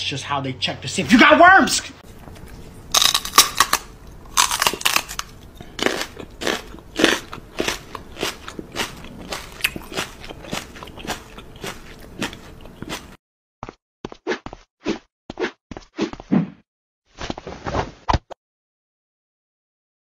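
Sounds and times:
crisp crunching and chewing: 2.1s - 13.2s.

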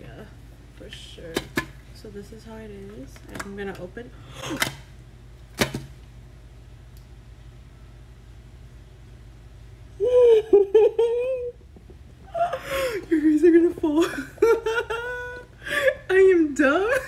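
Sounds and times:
woman's high wavering cry: 10.0s - 11.6s.

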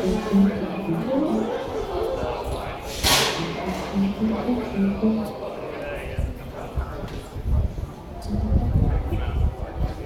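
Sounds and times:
low talking: 0.0s - 10.0s
drum crash: 3.0s - 3.5s.

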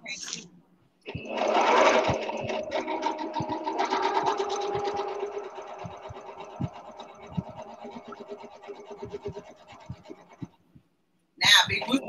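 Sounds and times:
sewing machine stitching: 1.1s - 10.6s.

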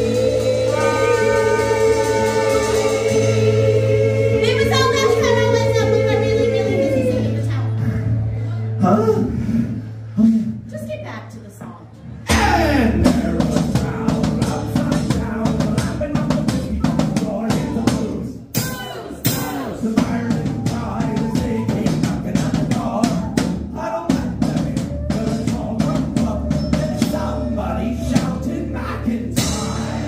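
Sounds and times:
bass drum and snare: 12.3s - 28.6s, 29.2s - 30.0s.

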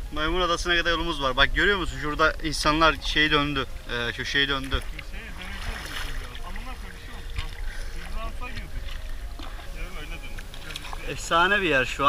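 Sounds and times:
faint voices talking: 0.0s - 12.0s
paddles splashing in water: 0.9s - 12.0s.

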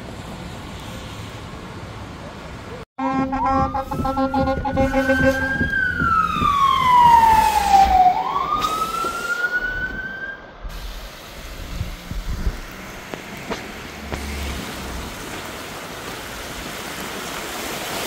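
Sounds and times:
fire engine siren wailing: 3.0s - 10.6s
rushing water and rain: 3.7s - 18.0s.

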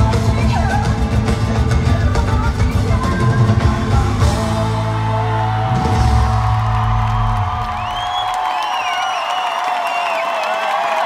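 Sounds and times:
live pop band chord: 0.0s - 6.6s
audience screaming and whooping: 4.2s - 11.0s
crowd roar: 4.2s - 11.0s.

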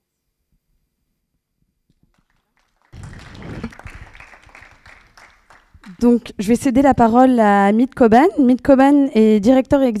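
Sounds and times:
audience applause: 2.1s - 6.2s.

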